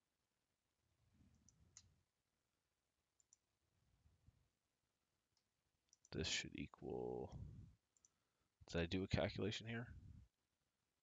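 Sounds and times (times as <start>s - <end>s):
computer mouse clicks: 3.2s - 3.4s, 5.4s - 6.1s.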